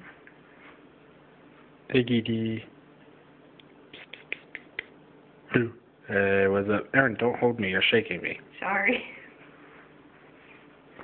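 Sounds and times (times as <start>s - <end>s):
person making sharp clicks: 3.6s - 5.0s.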